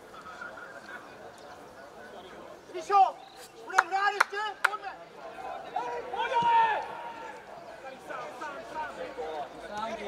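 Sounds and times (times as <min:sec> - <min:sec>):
distant players shouting: 0:03.7 - 0:07.6.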